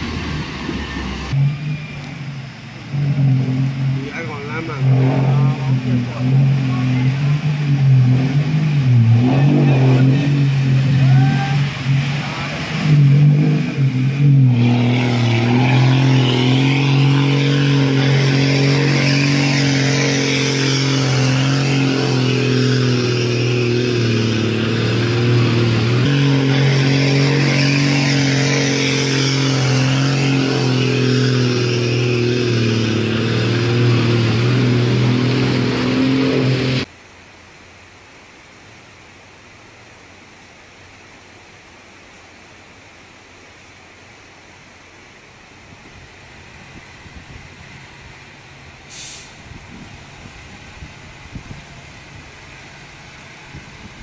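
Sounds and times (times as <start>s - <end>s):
truck engines revving: 0.0s - 36.9s, 45.6s - 54.0s
water rushing: 0.0s - 54.0s.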